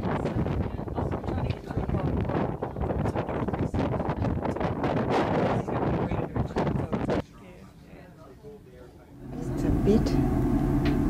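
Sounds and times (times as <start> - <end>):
wind buffeting microphone: 0.0 - 7.3.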